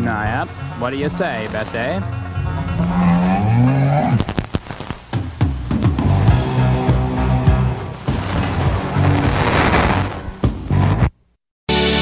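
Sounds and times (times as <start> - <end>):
music with steady notes: 0.0 - 11.1.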